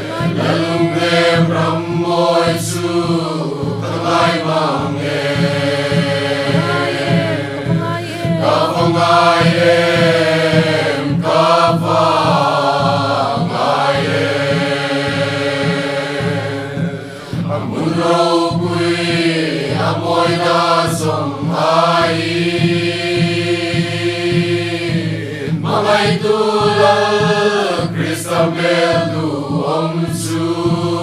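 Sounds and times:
choir singing in harmony: 0.0s - 31.0s.

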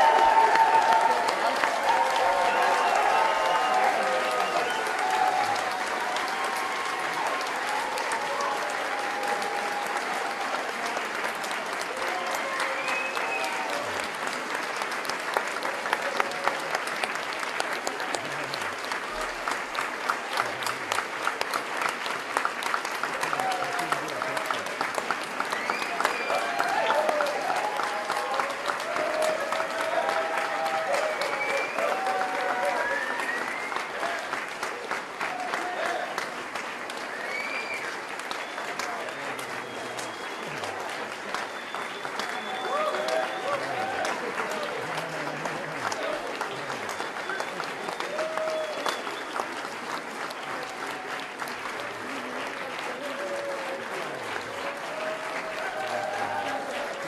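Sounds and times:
audience applauding: 0.0s - 57.0s.

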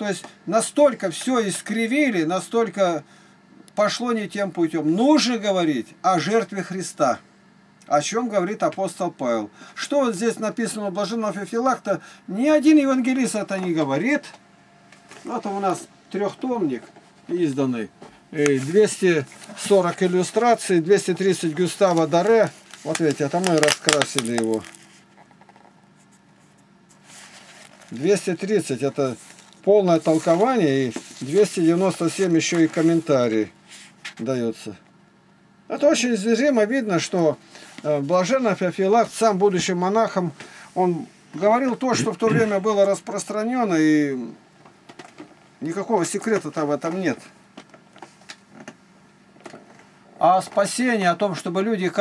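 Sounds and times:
faint steady hum: 0.0s - 52.0s
book pages rustling: 18.4s - 34.3s
soft scratchy strokes: 26.0s - 28.3s, 29.0s - 34.0s.

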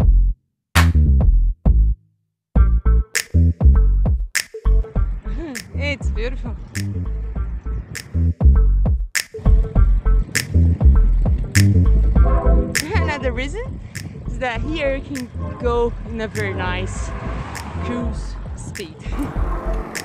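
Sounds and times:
electronic music with drum beat: 2.6s - 7.2s, 8.0s - 16.8s, 18.4s - 20.0s.

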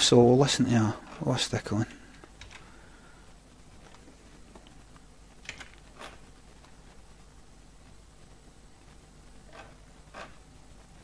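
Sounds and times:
computer keyboard typing clicks: 5.4s - 5.8s.

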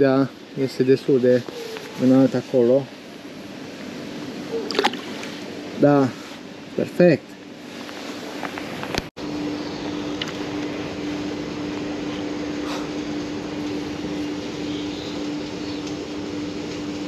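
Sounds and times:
steady constant hum: 0.0s - 17.0s.

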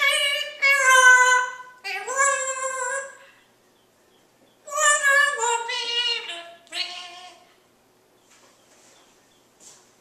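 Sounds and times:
parrot singing-like call: 0.0s - 3.3s, 4.5s - 7.5s.

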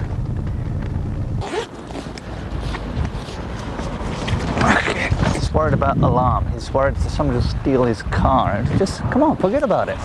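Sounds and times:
street noise: 0.0s - 10.0s
rustling of bag or clothing: 1.4s - 5.4s.

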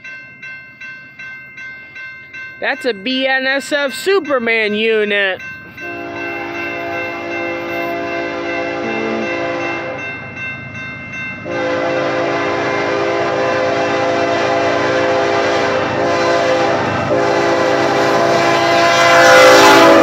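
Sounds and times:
locomotive air horn blasts: 5.8s - 10.0s, 11.5s - 20.0s.

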